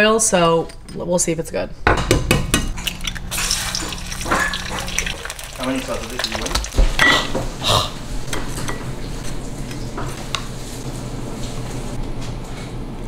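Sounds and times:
plate and utensils clattering: 0:03.4 - 0:05.4.

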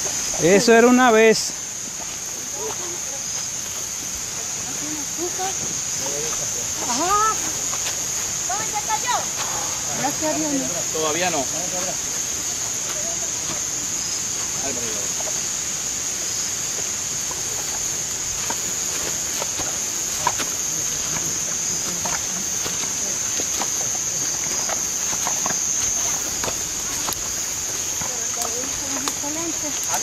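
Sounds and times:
footsteps on a trail: 0:00.0 - 0:30.0
insect chorus at night: 0:00.0 - 0:30.0.

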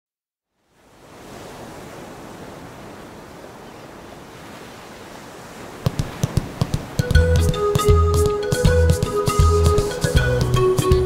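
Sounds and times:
ocean surf rushing: 0:00.6 - 0:11.0.

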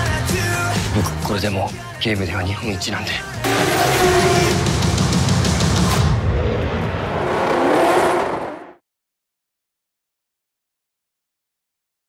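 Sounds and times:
car engine revving: 0:03.4 - 0:08.8.

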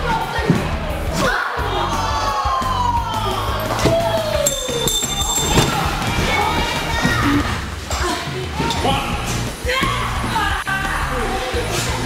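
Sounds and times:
music playing: 0:00.0 - 0:12.0
bodies thudding on ring mat: 0:03.6 - 0:07.3.

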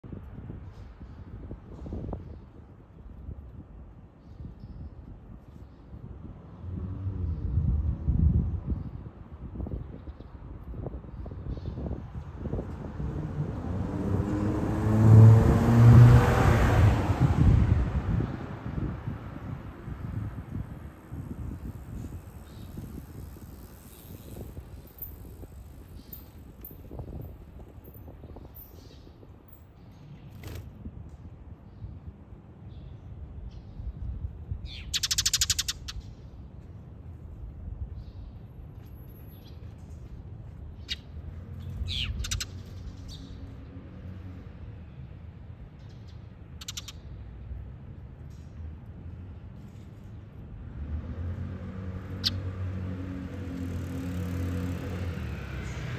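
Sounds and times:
road vehicle passing: 0:06.4 - 0:08.2, 0:12.1 - 0:28.1, 0:38.8 - 0:45.4, 0:46.4 - 0:55.9.

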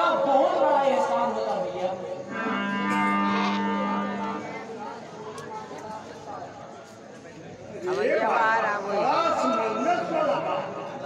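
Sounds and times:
man's voice: 0:00.0 - 0:01.6
long held note: 0:02.3 - 0:04.8.

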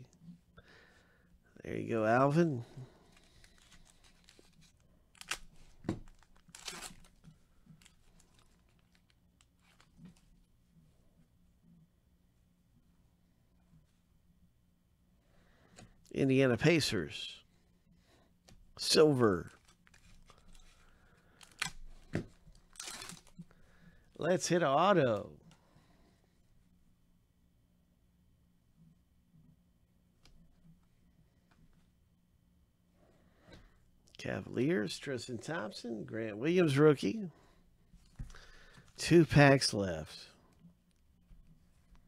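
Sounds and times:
foil pack tearing and crinkling: 0:03.2 - 0:07.2.

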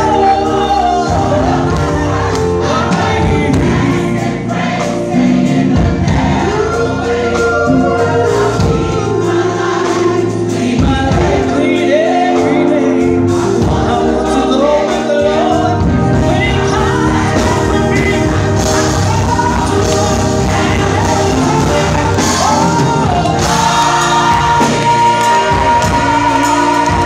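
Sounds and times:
gospel choir singing: 0:00.0 - 0:27.0
steady beat: 0:15.8 - 0:27.0.

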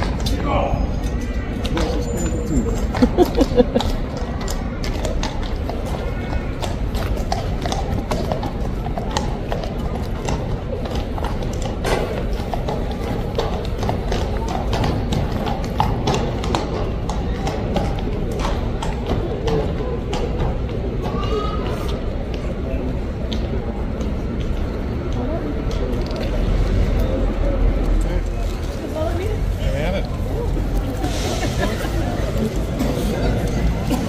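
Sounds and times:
horse hooves clopping: 0:00.0 - 0:34.0
people's voices: 0:00.0 - 0:34.0.

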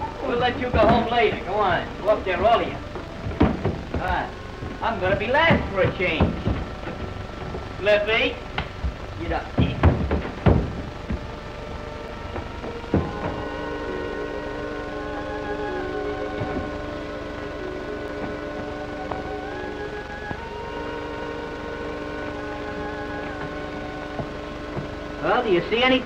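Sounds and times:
sustained orchestral chords: 0:00.0 - 0:26.0.

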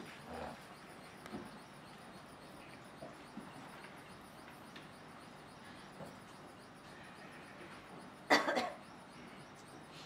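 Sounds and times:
person coughing: 0:08.3 - 0:08.8.

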